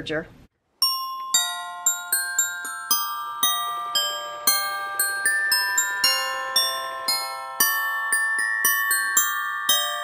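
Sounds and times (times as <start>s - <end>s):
bell-like christmas melody: 0.8s - 10.0s.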